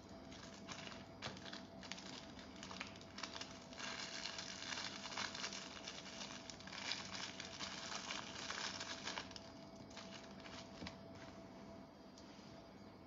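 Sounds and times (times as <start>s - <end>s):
plastic bag crinkling: 0.0s - 11.4s.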